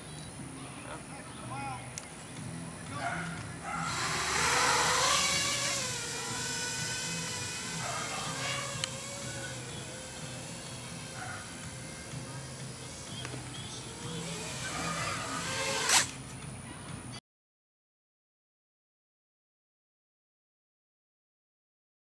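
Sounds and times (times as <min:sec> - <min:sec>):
drone motors whining: 0:02.4 - 0:16.3.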